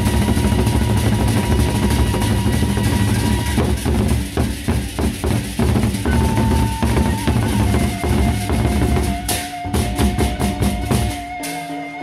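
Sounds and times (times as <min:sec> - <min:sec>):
barrel drums beaten fast: 0:00.0 - 0:11.4
clashing cymbals: 0:00.0 - 0:12.0.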